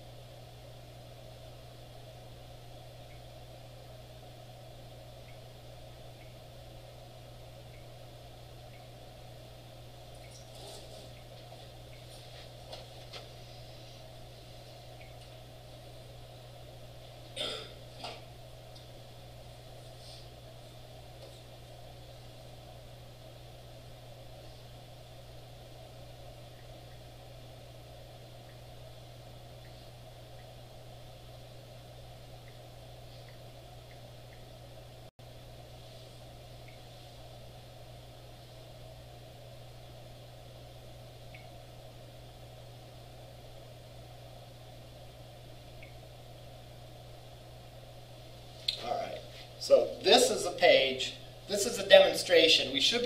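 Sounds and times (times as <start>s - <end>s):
low electrical hum: 0.0s - 53.0s.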